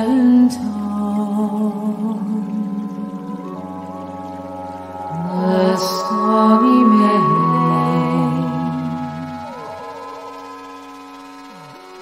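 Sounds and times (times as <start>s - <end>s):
slow ambient music: 0.0s - 12.0s.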